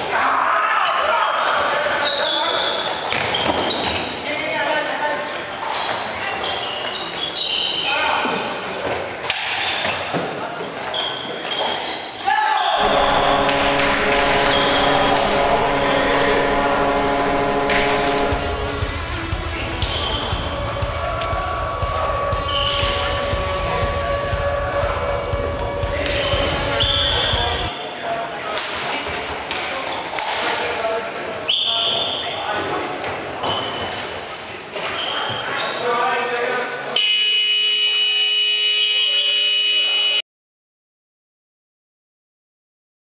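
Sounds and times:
shoe squeaks on floor: 0:00.9 - 0:04.2, 0:05.6 - 0:08.8, 0:10.8 - 0:12.8, 0:31.5 - 0:32.4, 0:33.4 - 0:35.8
players calling out: 0:12.7 - 0:19.1
steady tone: 0:12.8 - 0:27.7.

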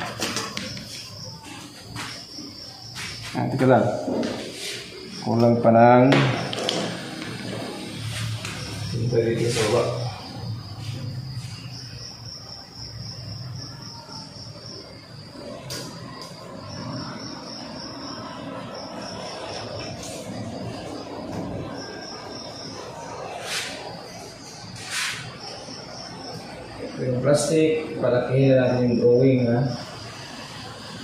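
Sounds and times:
insect trilling: 0:00.0 - 0:31.0.

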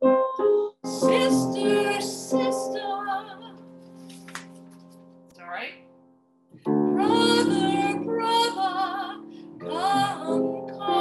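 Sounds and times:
grand piano: 0:00.0 - 0:11.0
woman singing opera with vibrato: 0:00.9 - 0:03.6, 0:07.0 - 0:11.0.

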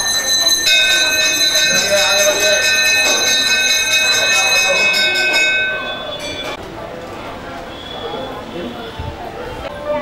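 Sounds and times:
metal temple bell ringing: 0:00.0 - 0:06.6
crowd voices: 0:00.0 - 0:10.0.

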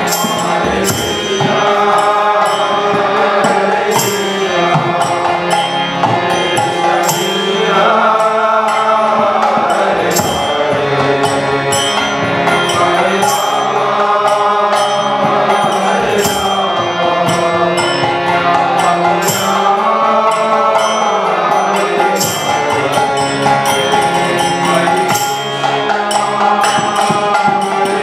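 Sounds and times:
chanted singing: 0:00.0 - 0:28.0
harmonium sustained chords: 0:00.0 - 0:28.0
small hand cymbals: 0:00.0 - 0:28.0.

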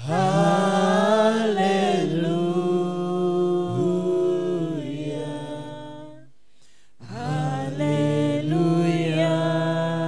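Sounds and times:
voices singing without instruments: 0:00.0 - 0:06.4, 0:07.0 - 0:10.0.

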